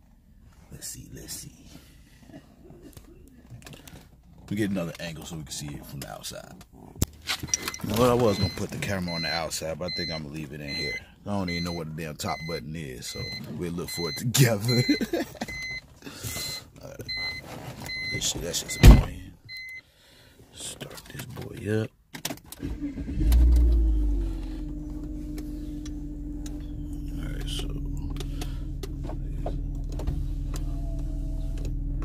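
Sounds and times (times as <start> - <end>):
rustling in car cabin: 3.3 - 9.2, 14.6 - 19.2, 20.6 - 32.0
dashboard warning chime beeping: 7.4 - 19.8.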